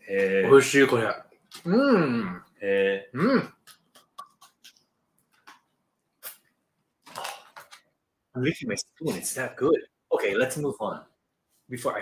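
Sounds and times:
person eating mouth sounds: 3.2s - 4.8s.

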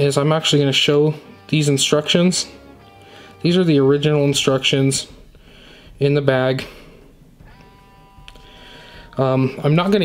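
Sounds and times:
person breathing with faint wheeze: 2.9s - 3.4s, 5.2s - 6.0s, 6.6s - 7.2s, 8.3s - 9.2s.

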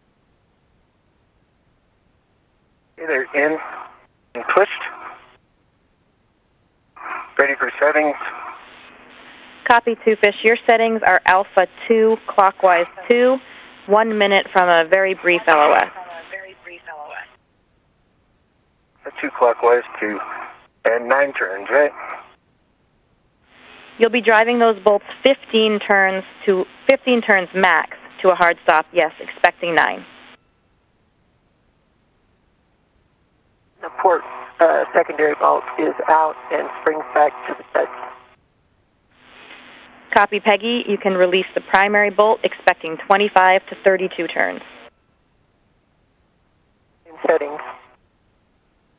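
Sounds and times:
voice over radio: 3.0s - 3.8s, 4.4s - 5.1s, 7.0s - 8.5s, 9.7s - 17.3s, 19.1s - 22.2s, 33.8s - 38.0s, 47.1s - 47.8s.

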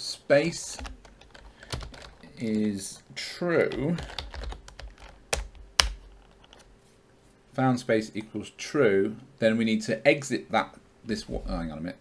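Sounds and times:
typing on computer keyboard: 0.8s - 2.3s, 3.6s - 6.0s.

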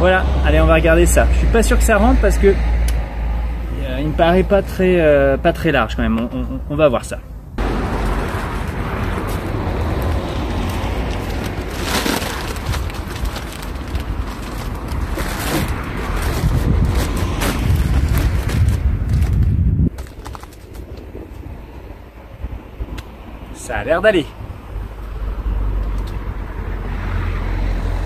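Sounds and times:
heavy low rumble: 7.4s - 23.4s
plastic sack rustling and crunching: 7.7s - 21.0s.

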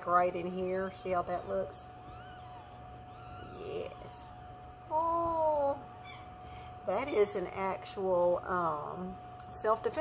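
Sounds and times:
faint hum: 0.0s - 10.0s
puppy whimpering: 0.3s - 6.4s
puppy wailing cry: 0.4s - 5.4s, 6.0s - 6.4s.

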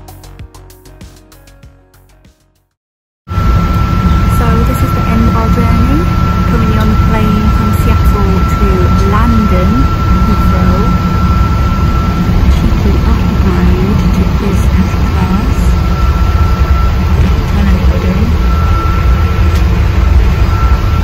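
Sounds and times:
airliner cabin roar: 3.3s - 21.0s
thin steady whine: 3.3s - 21.0s.

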